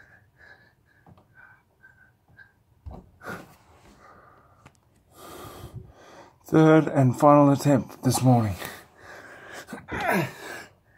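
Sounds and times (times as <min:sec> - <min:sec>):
man breathing hard: 0:00.0 - 0:06.4, 0:08.8 - 0:10.9.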